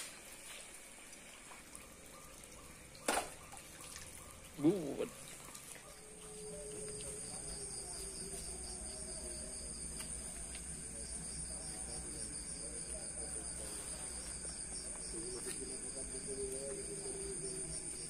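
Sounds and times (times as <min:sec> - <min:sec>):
crickets trilling: 0:01.4 - 0:18.0
pulsing insect trill: 0:01.8 - 0:18.0.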